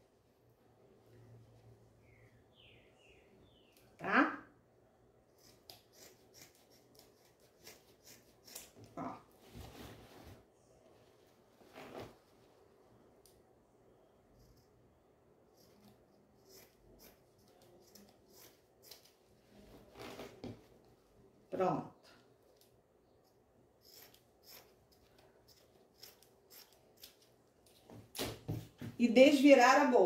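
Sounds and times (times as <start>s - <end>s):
scissors snipping fabric: 5.3s - 9.2s, 15.6s - 19.2s, 23.8s - 27.8s
cloth rustling: 9.3s - 12.9s, 19.3s - 21.2s.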